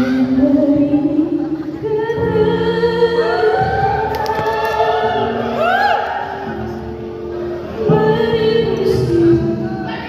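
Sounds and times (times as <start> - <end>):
woman singing into a microphone: 0.0 - 4.2, 7.8 - 10.0.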